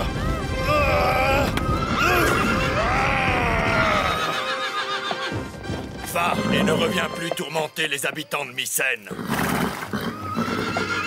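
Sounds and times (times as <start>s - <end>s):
music: 0.0s - 8.9s
horse whinnying: 1.4s - 5.5s, 9.1s - 11.0s.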